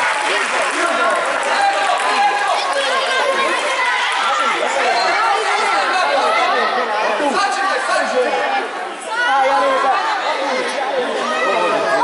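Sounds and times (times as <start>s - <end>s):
crowd chatter and calling out: 0.0s - 12.0s.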